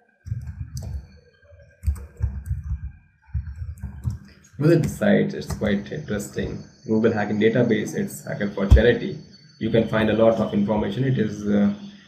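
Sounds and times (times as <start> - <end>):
computer keyboard typing: 0.2 - 1.1, 1.7 - 5.8.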